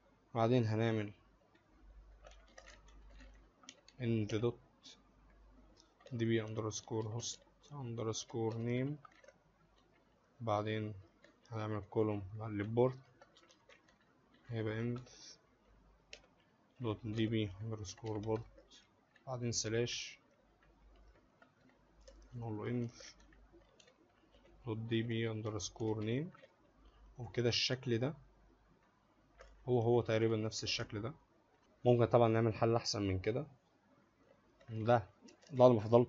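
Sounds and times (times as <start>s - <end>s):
computer keyboard keystrokes: 1.5s - 4.4s, 5.8s - 10.1s, 10.8s - 19.8s, 20.6s - 24.6s.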